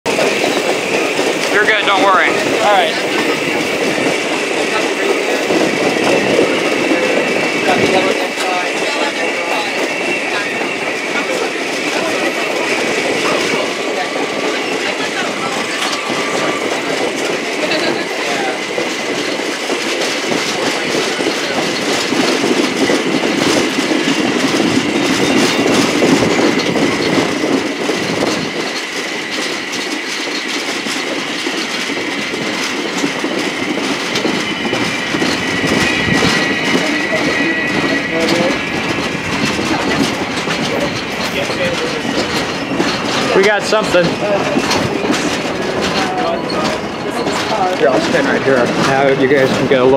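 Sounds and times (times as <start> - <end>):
train rolling rumble: 0.0 - 49.9
high wheel squeal: 0.1 - 49.9
wheels clicking over rail joints: 0.1 - 49.9.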